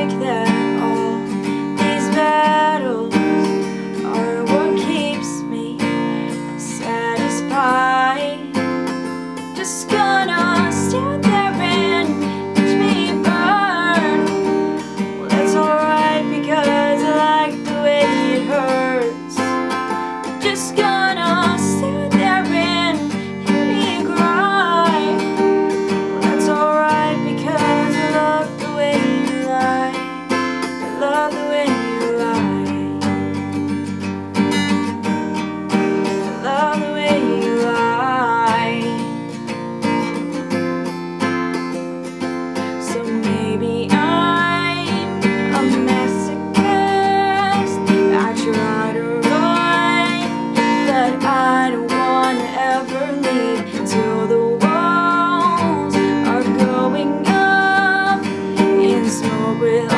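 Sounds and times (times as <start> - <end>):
young woman singing: 0.0 - 40.2, 42.6 - 59.9
acoustic guitar strumming: 0.0 - 59.9.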